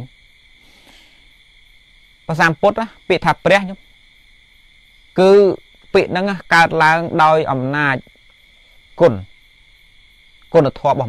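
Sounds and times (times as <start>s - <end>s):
faint high-pitched whine: 0.0s - 11.0s
man speaking a syllable: 2.3s - 3.8s, 5.2s - 8.0s, 9.0s - 9.3s, 10.5s - 11.0s.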